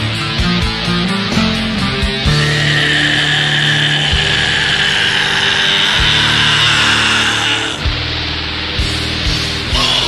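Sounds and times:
distorted guitar black metal: 0.0s - 10.0s.

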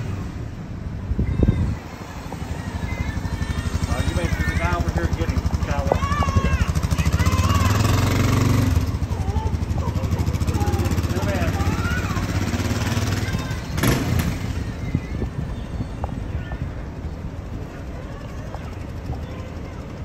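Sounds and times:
motorcycle engine idling: 2.2s - 20.0s.

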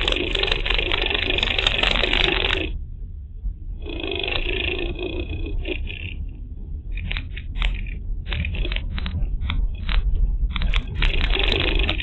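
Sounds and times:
crunching and scraping noise: 0.0s - 2.8s, 6.9s - 12.0s.

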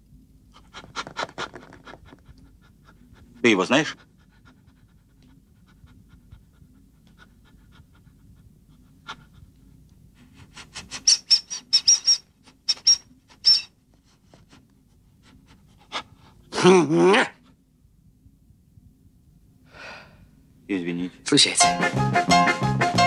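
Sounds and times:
low steady hum: 0.0s - 21.3s
dog panting: 0.5s - 16.6s.

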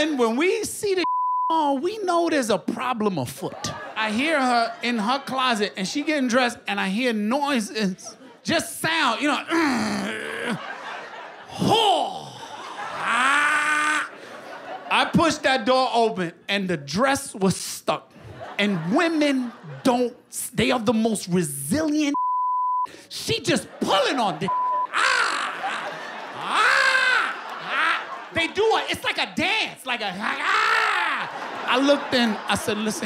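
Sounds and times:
person moaning: 9.5s - 10.6s, 13.0s - 14.1s, 24.9s - 27.4s
person making falling whoop: 24.9s - 28.1s.

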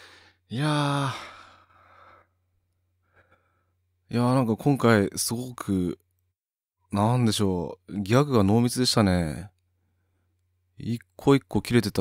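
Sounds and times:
breathy sigh: 0.0s - 2.4s.

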